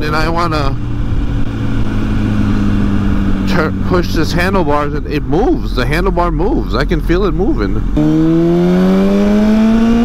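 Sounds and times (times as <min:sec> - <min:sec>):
motorcycle engine cruising: 0:00.0 - 0:10.0
wind rumble: 0:00.0 - 0:10.0.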